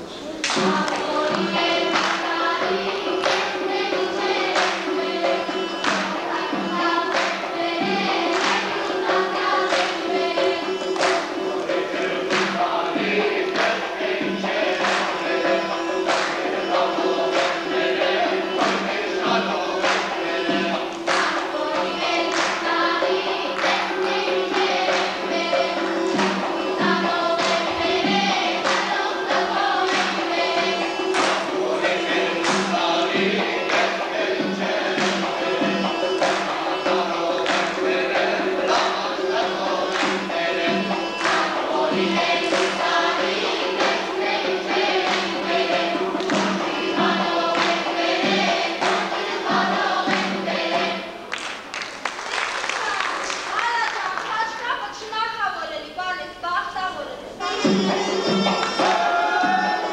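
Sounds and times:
mixed folk choir singing: 0.0s - 51.6s, 57.4s - 59.9s.

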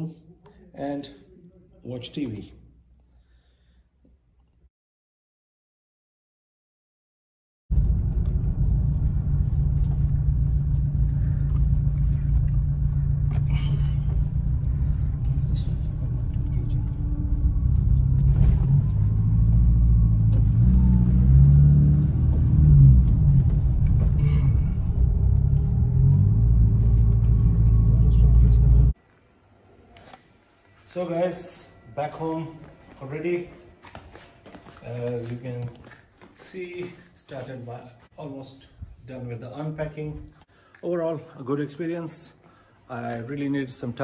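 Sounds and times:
car engine rumble: 7.7s - 29.0s
road noise: 7.7s - 29.0s.

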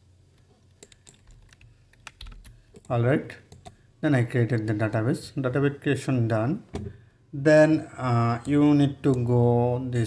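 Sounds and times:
computer keyboard keystrokes: 0.8s - 2.9s.

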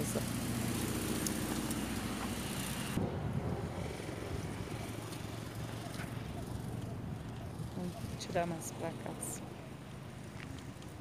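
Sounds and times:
scooter wheels rolling on asphalt: 0.0s - 11.0s.

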